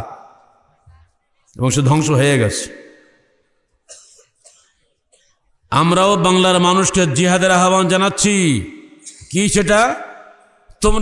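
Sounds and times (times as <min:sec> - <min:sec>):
person coughing: 0:03.9 - 0:05.3.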